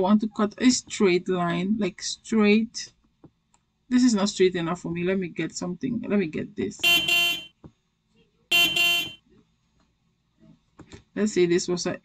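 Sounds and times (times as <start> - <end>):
short horn blasts: 6.8 - 7.5, 8.5 - 9.2.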